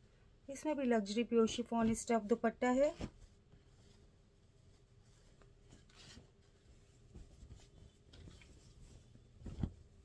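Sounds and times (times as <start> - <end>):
fabric rustling: 1.0 - 10.0.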